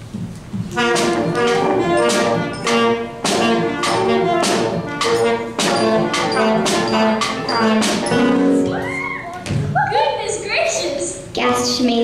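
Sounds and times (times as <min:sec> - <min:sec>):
brass band playing: 0:00.7 - 0:08.8.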